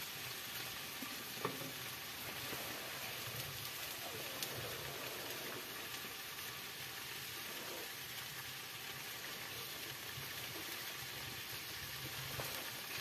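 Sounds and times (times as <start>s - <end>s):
food sizzling in a frying pan: 0.0s - 13.0s.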